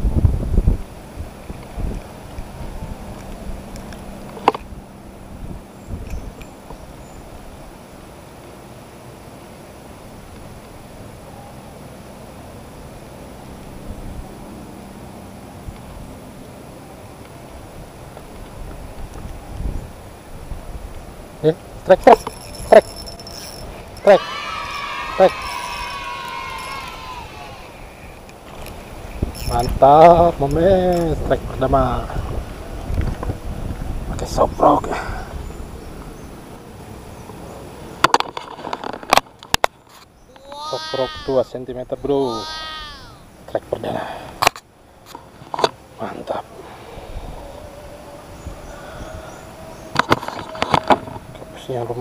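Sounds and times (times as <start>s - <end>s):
faint distant hum: 0.0s - 52.0s
outdoor background noise: 0.0s - 52.0s
fishing reel whirring: 22.1s - 28.2s, 29.3s - 29.8s.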